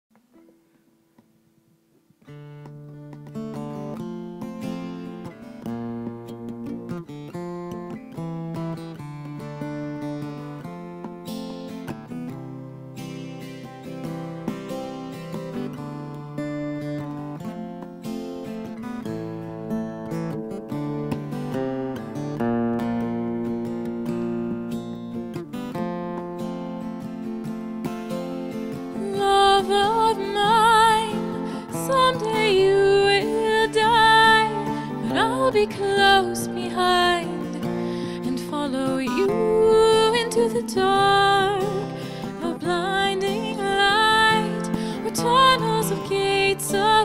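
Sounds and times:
acoustic guitar picking chords: 0:00.1 - 0:47.0.

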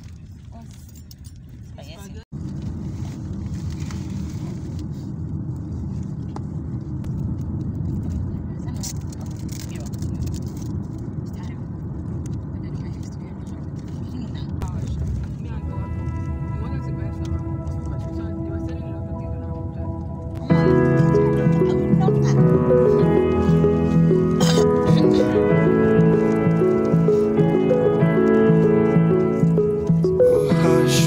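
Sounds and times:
car interior road rumble: 0:00.0 - 0:31.0.

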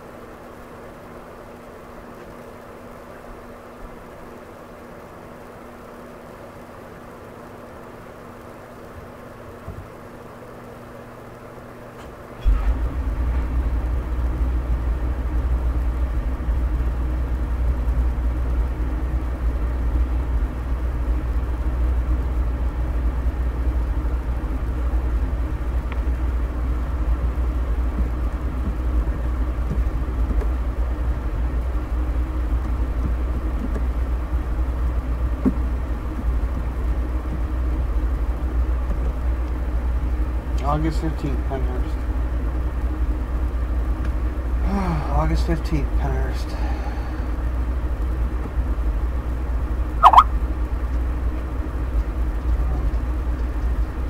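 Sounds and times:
faint hum: 0:00.0 - 0:54.0
loud steady low rumble: 0:07.0 - 0:54.0.

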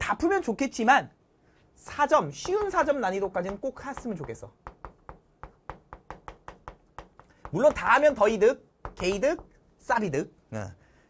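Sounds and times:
chalk tapping on chalkboard: 0:02.3 - 0:09.7.

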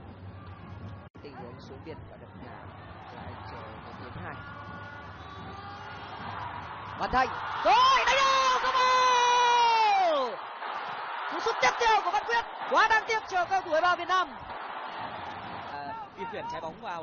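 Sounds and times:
stadium crowd noise: 0:00.0 - 0:17.0
commentator's excited shout: 0:07.1 - 0:10.4.

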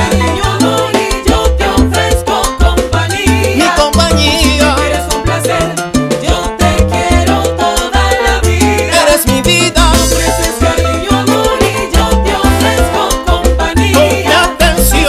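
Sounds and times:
low bass line: 0:00.0 - 0:15.0
percussion strokes: 0:00.0 - 0:15.0.

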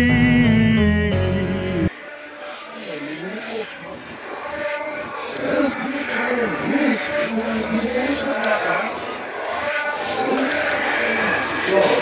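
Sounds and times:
steady background noise: 0:01.9 - 0:12.0.

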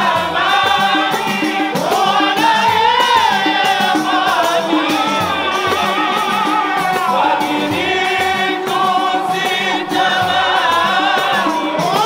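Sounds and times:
frame drum beat: 0:00.0 - 0:12.0
men chanting in chorus: 0:00.0 - 0:12.0.

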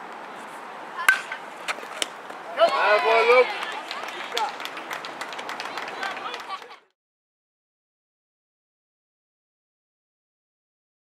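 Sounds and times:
outdoor field noise: 0:00.0 - 0:07.0
baseball smacking: 0:01.0 - 0:02.4
loud shout: 0:02.5 - 0:04.6.

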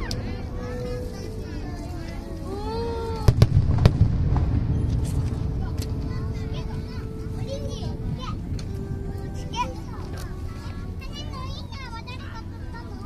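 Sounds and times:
low rumble: 0:02.9 - 0:10.8
firework shells bursting: 0:03.3 - 0:05.9.

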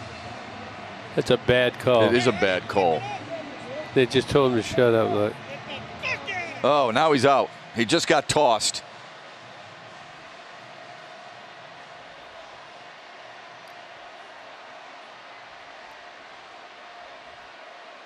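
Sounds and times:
ballpark background noise: 0:00.0 - 0:18.0.

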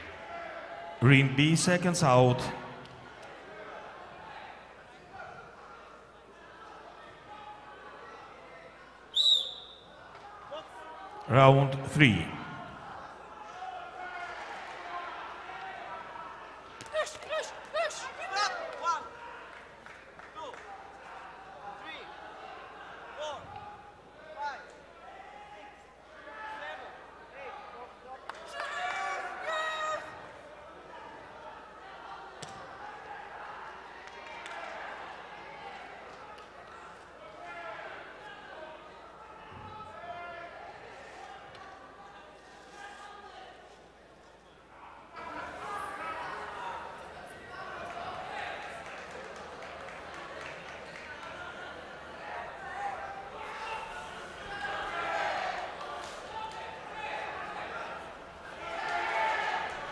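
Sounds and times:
coaches and spectators shouting: 0:00.0 - 0:43.6, 0:44.7 - 0:59.9.

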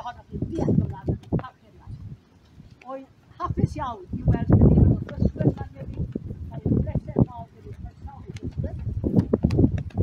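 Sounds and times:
people talking quietly: 0:00.0 - 0:09.0.

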